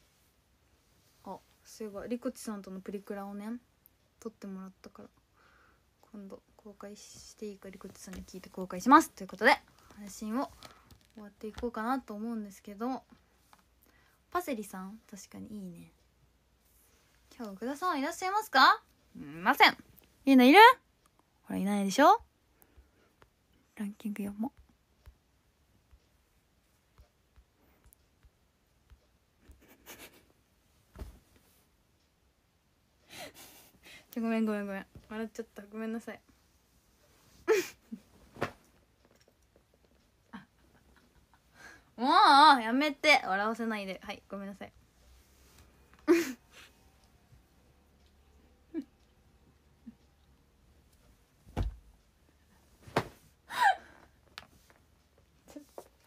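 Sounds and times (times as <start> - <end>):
woman laughing breathlessly: 53.5 - 54.0.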